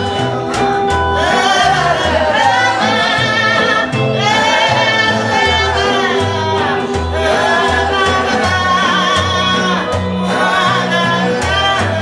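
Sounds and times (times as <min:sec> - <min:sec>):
guitar: 0:00.0 - 0:12.0
plucked upright bass: 0:00.0 - 0:12.0.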